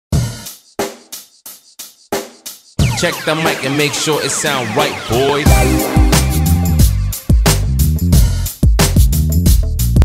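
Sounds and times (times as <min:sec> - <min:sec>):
snare and cymbal hits: 0:00.2 - 0:09.6.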